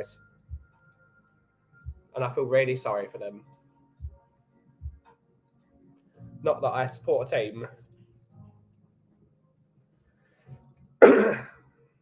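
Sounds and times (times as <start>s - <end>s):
man clearing throat: 11.0s - 11.6s.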